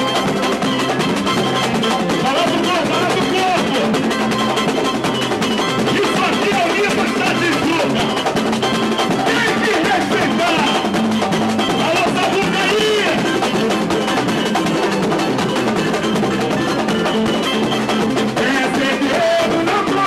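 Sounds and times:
samba percussion band: 0.0 - 20.0
man singing into a microphone: 9.3 - 10.8, 18.4 - 20.0.

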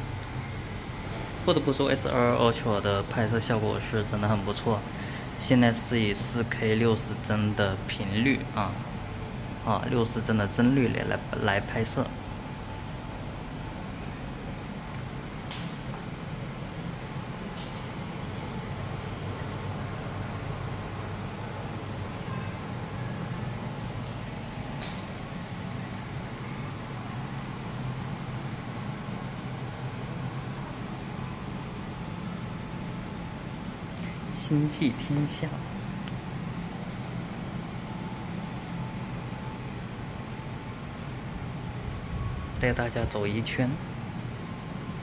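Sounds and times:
shop interior rumbling: 0.0 - 45.0
ventilation hum: 0.0 - 45.0
faint thin tone: 22.1 - 23.2.

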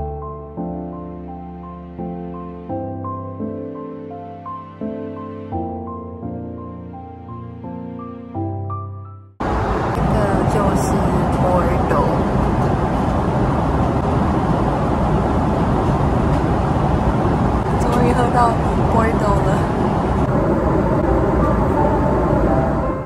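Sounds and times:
airliner cabin roar: 9.4 - 23.0.

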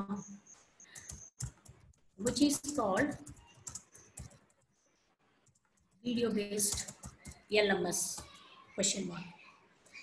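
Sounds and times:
computer keyboard typing: 0.9 - 4.8, 5.4 - 8.6.

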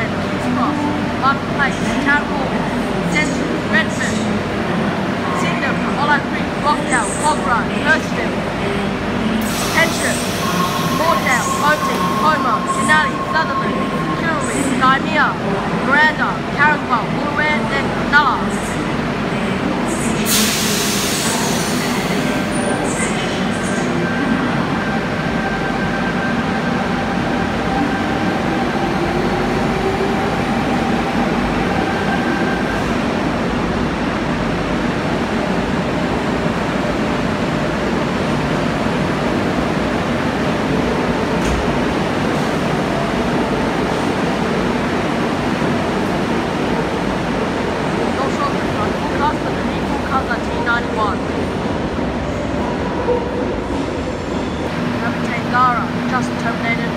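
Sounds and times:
loud hiss of air: 9.4 - 10.9, 20.3 - 22.1.

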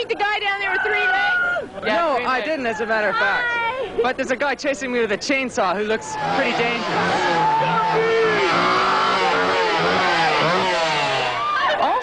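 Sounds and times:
chainsaw engine revving: 6.1 - 11.7.

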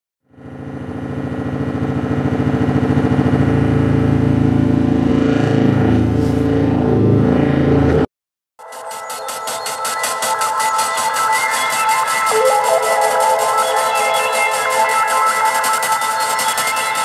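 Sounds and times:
droning synthesizer music: 8.6 - 17.0.

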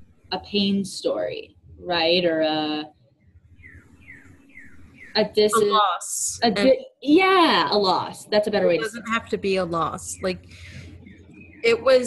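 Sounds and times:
bird chirps: 3.6 - 5.6, 10.0 - 12.0.

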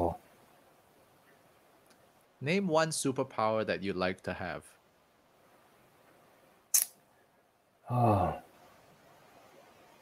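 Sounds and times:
sharp hissy click: 6.7 - 7.0.

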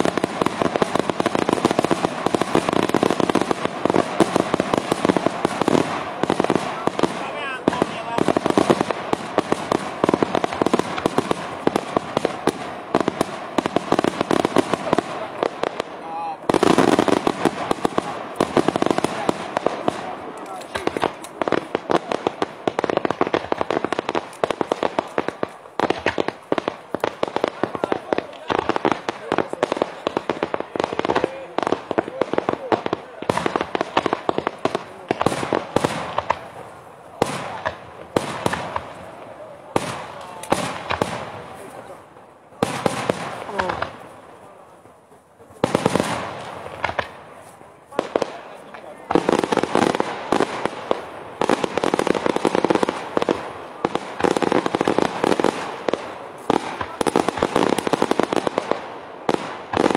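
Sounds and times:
fireworks bangs: 0.0 - 59.9.

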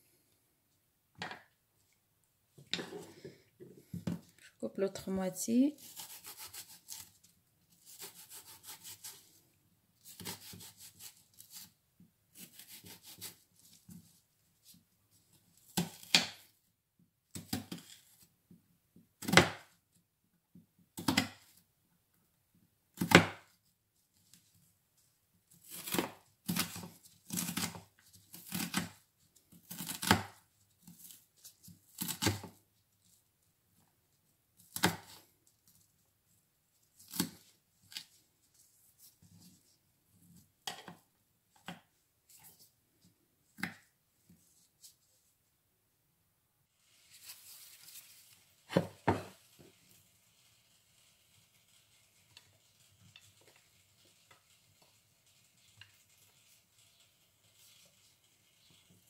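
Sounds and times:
knife slicing onion: 5.8 - 7.2, 7.8 - 9.3, 10.0 - 13.4, 15.6 - 16.5, 22.9 - 23.5, 25.6 - 31.2, 31.8 - 32.6, 34.6 - 35.2, 37.0 - 38.1.

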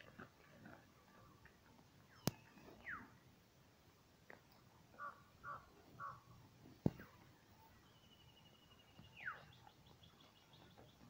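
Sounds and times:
bird cawing: 5.0 - 6.3.

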